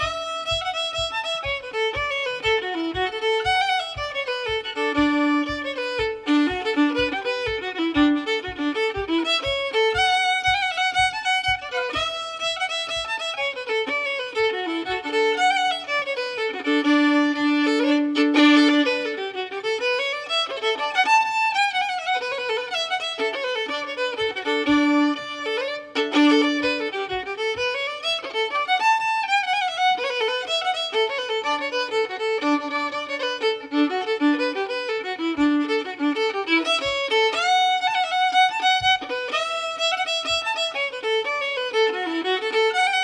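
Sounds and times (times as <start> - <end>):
fiddle playing lively tune: 0.0 - 43.0
low steady beat: 0.0 - 43.0.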